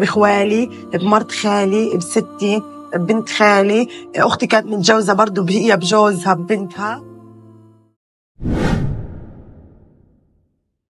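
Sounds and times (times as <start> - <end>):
low rumble: 8.4 - 10.1
whoosh: 8.4 - 10.3.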